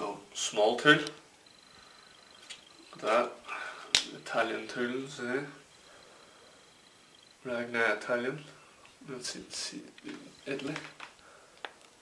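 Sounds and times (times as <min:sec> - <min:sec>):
man talking: 0:00.0 - 0:01.2, 0:02.9 - 0:05.7, 0:07.4 - 0:11.0.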